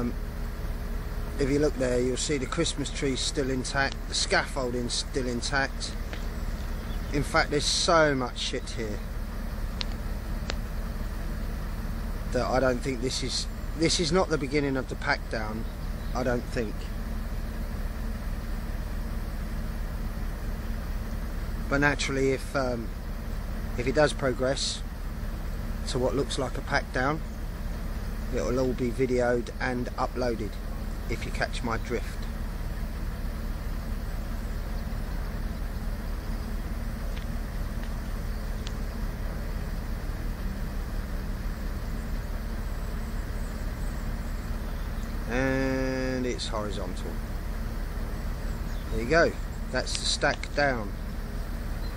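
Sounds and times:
crane engine droning: 0.0s - 51.9s.

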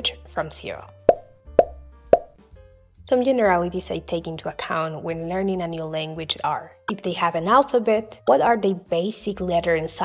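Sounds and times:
short pops with pitched tone: 1.1s - 2.4s.

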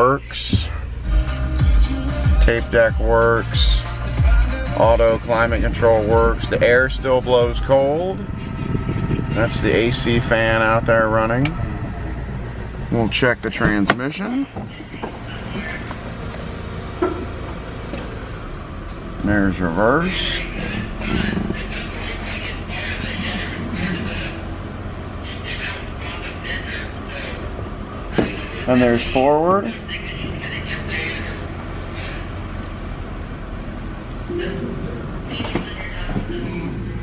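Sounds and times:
car engine idling: 0.0s - 37.0s
climate-control fan running: 0.3s - 37.0s.

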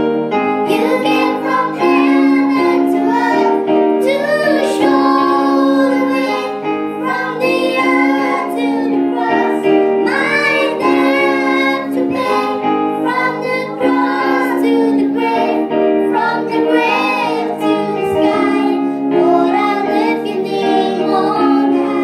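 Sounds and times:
electronic keyboard chords: 0.0s - 22.0s
girl singing into microphone: 0.6s - 22.0s
children's voices: 0.7s - 22.0s.

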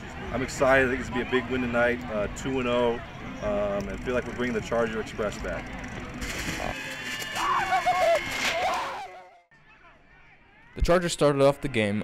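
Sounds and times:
paper banner crackling and tearing: 6.1s - 9.1s
people yelling: 6.8s - 10.8s.

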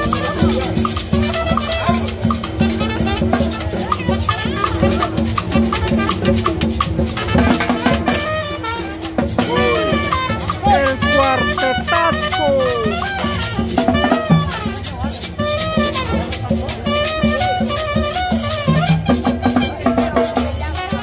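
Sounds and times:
trumpet melody: 0.0s - 20.0s, 20.7s - 21.0s
drums beating: 0.0s - 21.0s
latin street band music: 0.0s - 21.0s.

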